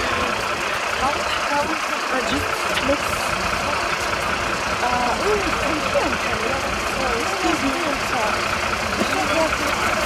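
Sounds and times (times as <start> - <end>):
indistinct voices: 0.0 - 10.0
vehicle engines idling: 0.0 - 10.0.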